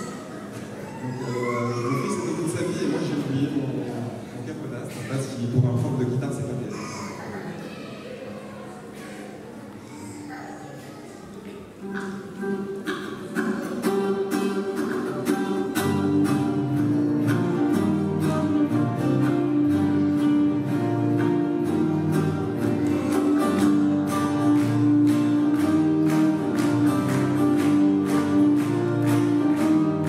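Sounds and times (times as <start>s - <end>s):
acoustic guitars strummed: 11.8s - 30.0s.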